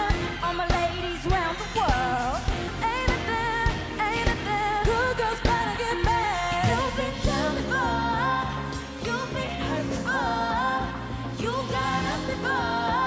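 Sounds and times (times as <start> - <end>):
backing track with beat and bass: 0.0 - 13.0
female vocal group singing: 0.0 - 13.0.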